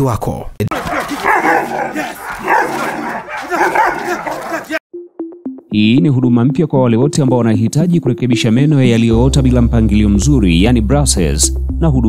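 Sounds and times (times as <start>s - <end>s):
dog barking: 0.7s - 4.8s.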